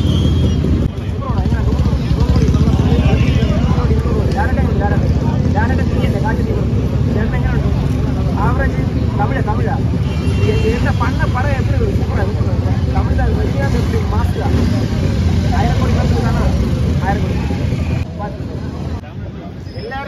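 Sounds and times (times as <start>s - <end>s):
road traffic rumble: 0.0s - 20.0s
voices talking: 0.0s - 20.0s.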